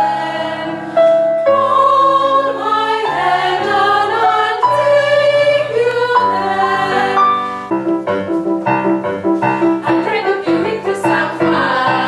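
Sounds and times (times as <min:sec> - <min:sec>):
chamber choir singing in harmony: 0:00.0 - 0:07.7, 0:09.8 - 0:12.0.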